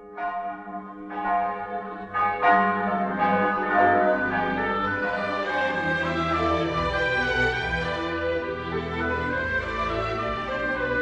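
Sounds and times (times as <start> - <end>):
church bells ringing: 0.0 - 10.1.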